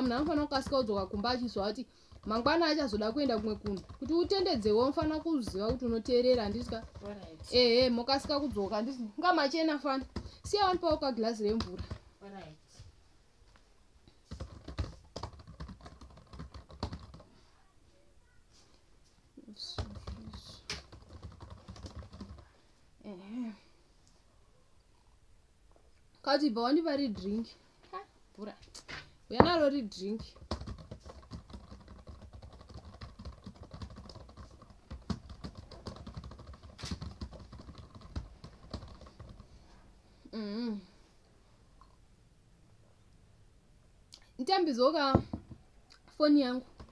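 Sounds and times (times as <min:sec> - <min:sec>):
laptop keyboard typing: 0:00.0 - 0:09.0, 0:09.7 - 0:12.0, 0:14.2 - 0:17.3, 0:19.7 - 0:22.5, 0:27.0 - 0:27.5, 0:29.4 - 0:39.6, 0:46.6 - 0:46.9.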